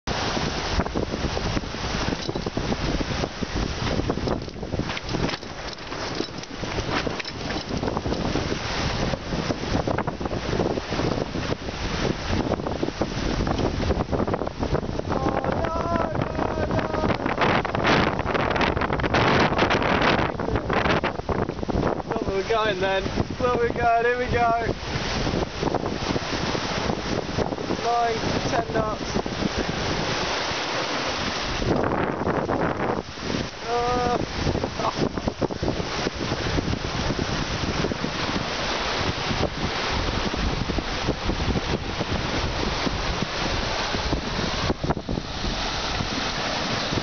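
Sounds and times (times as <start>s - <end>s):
water rushing along hull: 0.0s - 47.0s
wind buffeting microphone: 0.1s - 47.0s.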